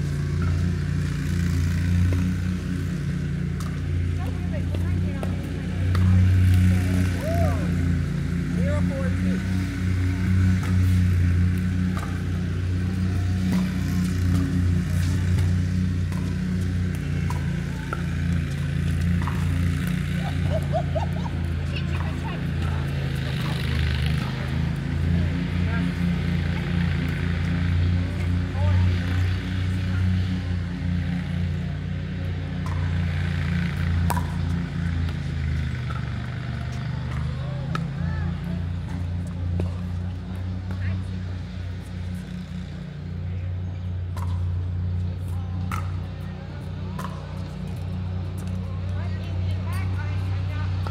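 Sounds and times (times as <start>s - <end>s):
loud steady low hum: 0.0s - 50.9s
voices: 3.6s - 50.9s
paddles hitting plastic ball: 33.8s - 38.0s.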